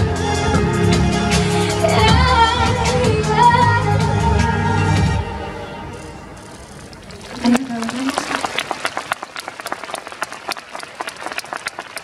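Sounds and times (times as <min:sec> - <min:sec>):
audience applauding: 0:06.8 - 0:12.0.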